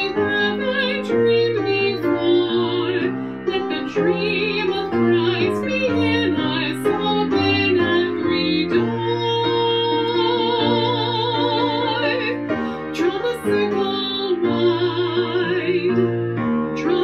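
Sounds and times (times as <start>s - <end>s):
woman singing a hymn: 0.0s - 16.1s, 16.8s - 17.0s
grand piano chords: 0.0s - 17.0s.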